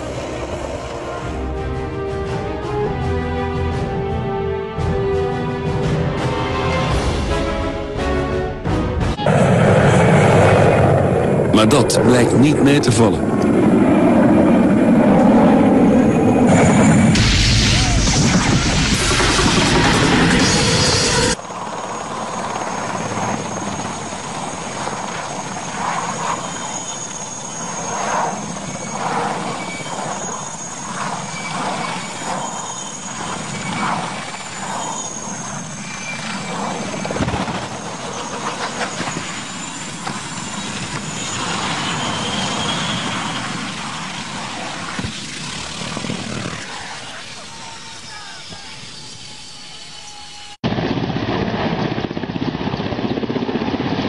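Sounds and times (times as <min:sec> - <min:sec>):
helicopter turbine whine and rotors: 0:00.0 - 0:54.0
loud noisy burst: 0:16.4 - 0:21.4.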